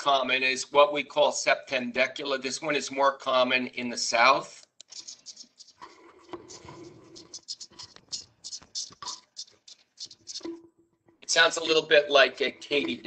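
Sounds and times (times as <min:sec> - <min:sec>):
cicada song ticks: 0:04.8 - 0:10.6.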